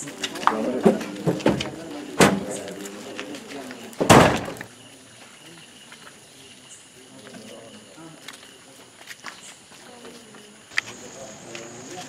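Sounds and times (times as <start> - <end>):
faint background voices: 0.0 - 12.0
loud sudden thump: 4.0 - 4.7.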